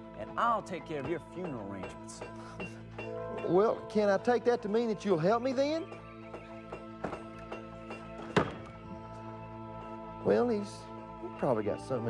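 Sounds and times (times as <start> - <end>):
background music with held notes: 0.0 - 12.0
wooden door slamming shut: 8.2 - 8.8.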